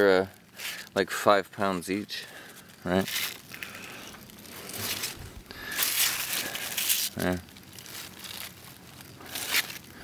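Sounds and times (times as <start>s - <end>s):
leaves rustling: 0.0s - 10.0s.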